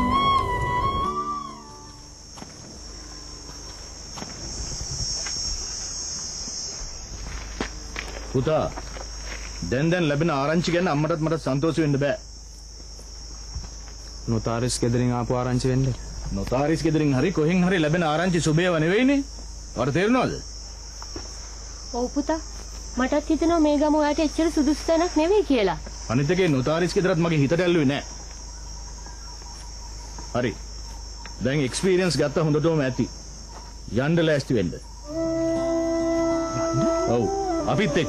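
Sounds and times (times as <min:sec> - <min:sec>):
high-pitched insect chorus: 0:00.0 - 0:38.0.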